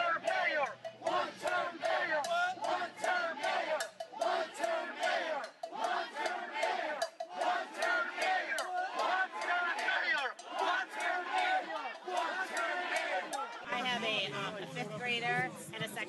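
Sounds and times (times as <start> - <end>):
crowd shouting: 0.0 - 14.8.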